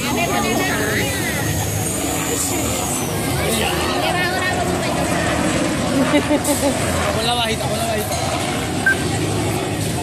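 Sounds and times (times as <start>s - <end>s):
short high beep: 8.8s - 9.0s.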